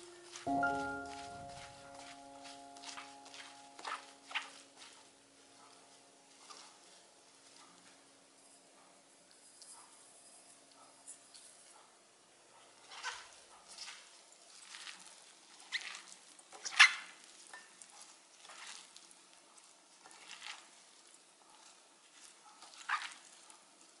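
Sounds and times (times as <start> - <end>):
wet squishing and rustling: 1.2 - 7.6, 12.8 - 24.0.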